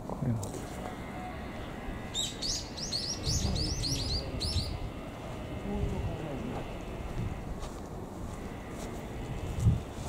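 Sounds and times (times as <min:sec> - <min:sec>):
songbird chirping: 0:00.8 - 0:07.4.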